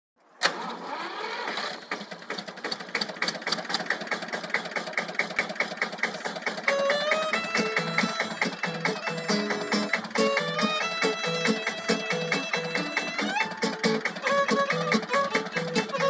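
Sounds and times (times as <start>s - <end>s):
tractor engine running: 0.4s - 16.0s
violin playing: 6.6s - 16.0s.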